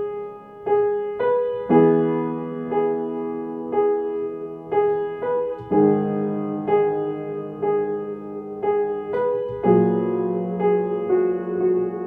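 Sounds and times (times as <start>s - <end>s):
upright piano chords: 0.0s - 12.0s.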